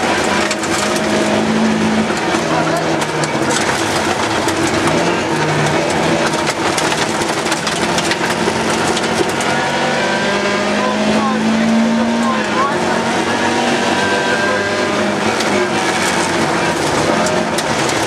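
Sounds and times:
gravel road noise: 0:00.0 - 0:18.0
rally car engine under load: 0:00.0 - 0:18.0.

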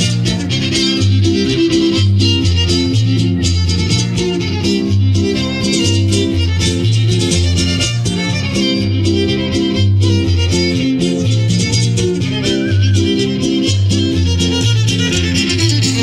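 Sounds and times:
fiddle melody: 0:00.0 - 0:16.0
repeating bass pattern: 0:00.0 - 0:16.0
strummed guitars: 0:00.0 - 0:16.0.

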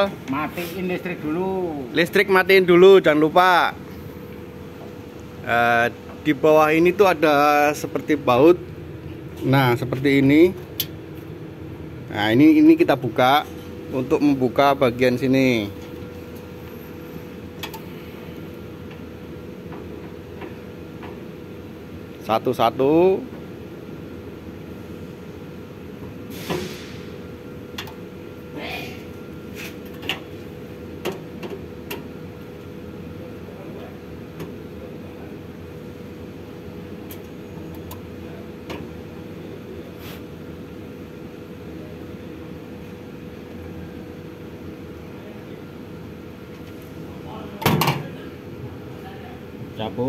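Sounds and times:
steady background hum: 0:00.0 - 0:50.0.

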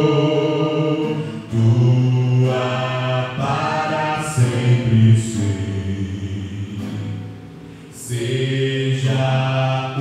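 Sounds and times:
man singing a slow hymn: 0:00.0 - 0:07.2, 0:07.9 - 0:10.0.

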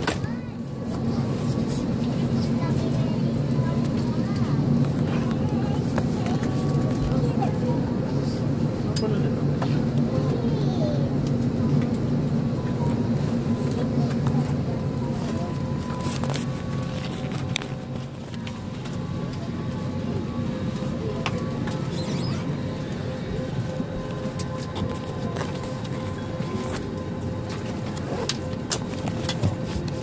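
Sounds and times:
airliner cabin hum: 0:00.0 - 0:30.0
indistinct passenger chatter: 0:00.0 - 0:30.0.

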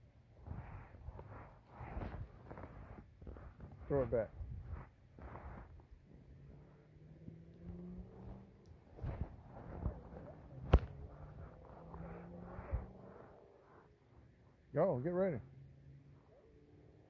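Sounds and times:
rustling: 0:00.0 - 0:13.5
faint low hum: 0:00.0 - 0:17.0
sharp knock: 0:10.6 - 0:11.0.

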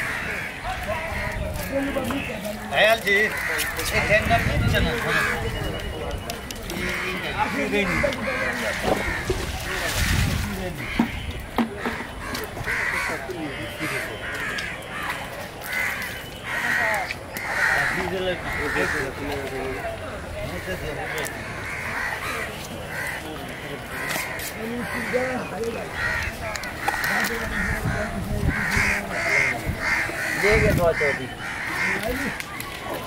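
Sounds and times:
crows cawing: 0:00.0 - 0:02.3, 0:02.9 - 0:05.5, 0:06.7 - 0:32.5
faint voices: 0:00.0 - 0:33.0.

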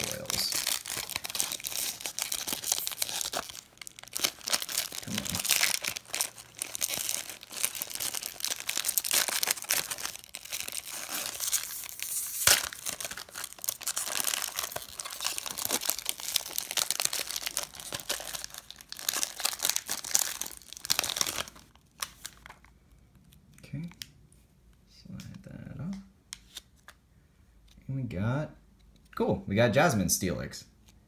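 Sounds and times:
foil wrappers torn and crinkled: 0:00.0 - 0:22.7.

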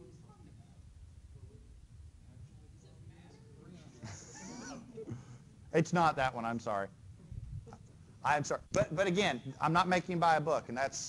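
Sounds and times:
steady room hiss: 0:00.0 - 0:11.0.

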